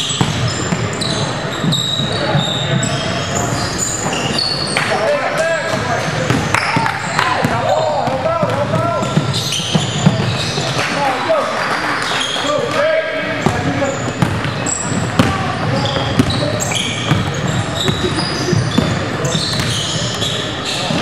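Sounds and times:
basketball bouncing on court: 0.0 - 3.0, 5.6 - 10.8, 13.4 - 21.0
sneakers squeaking on hardwood: 0.0 - 10.9, 13.4 - 21.0.

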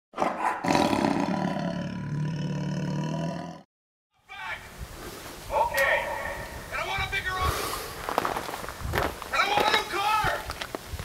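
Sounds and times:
roar sound effect: 0.2 - 3.7.

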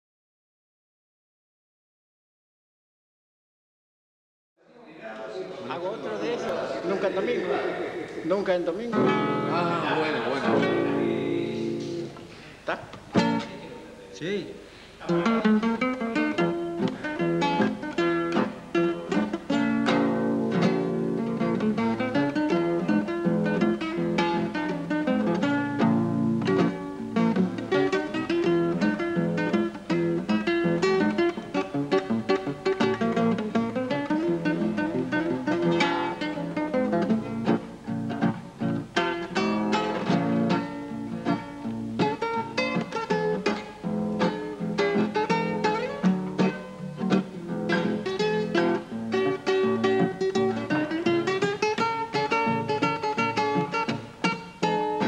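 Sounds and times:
fingerstyle classical guitar: 8.0 - 14.0, 15.0 - 55.0.

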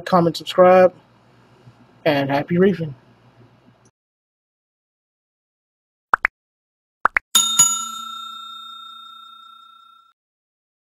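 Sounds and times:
bell ringing: 7.4 - 10.2.

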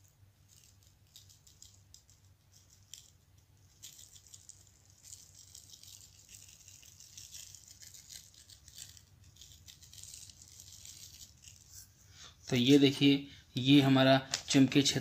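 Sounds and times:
metal filings rattling onto paper: 0.5 - 11.8.

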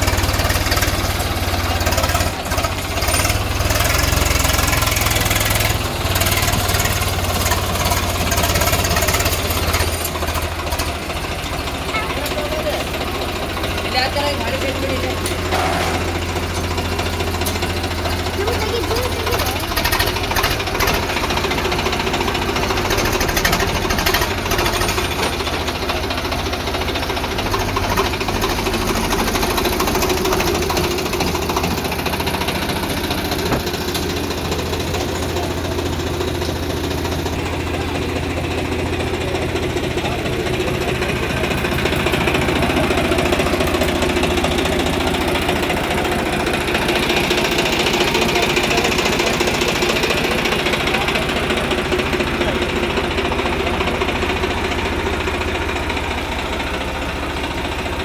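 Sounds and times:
tractor diesel engine idling: 0.0 - 58.0.

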